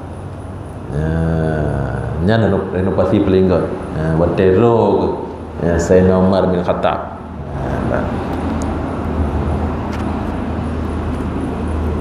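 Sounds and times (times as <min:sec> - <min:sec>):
microphone background rumble and hiss: 0:00.0 - 0:12.0.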